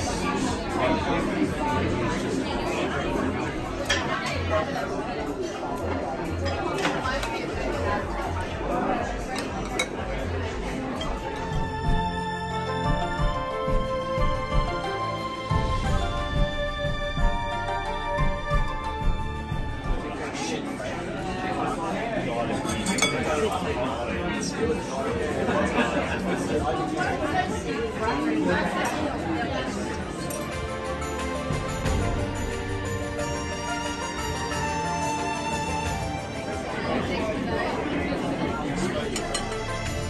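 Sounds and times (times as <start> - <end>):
diners chattering: 0.0 - 40.0
cutlery clinking on crockery: 9.3 - 10.0, 22.6 - 23.5, 39.0 - 39.9.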